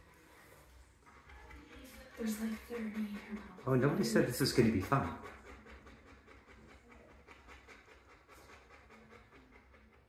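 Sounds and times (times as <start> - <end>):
dog panting: 0.2 - 10.0.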